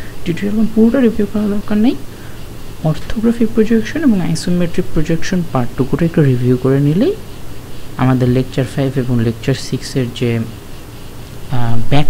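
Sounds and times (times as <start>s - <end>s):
faint steady low hum: 0.0s - 12.0s
person speaking: 0.0s - 12.0s.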